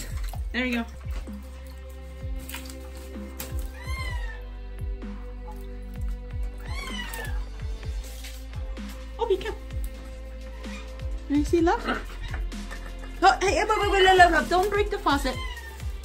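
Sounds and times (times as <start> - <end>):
background music: 0.0 - 16.0
parrot meow-like calls: 3.6 - 4.5, 6.6 - 7.5, 15.2 - 16.0.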